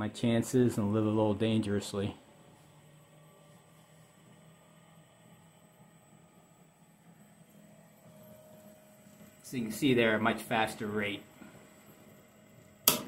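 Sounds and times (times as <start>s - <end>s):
faint machine hum: 0.0s - 13.0s.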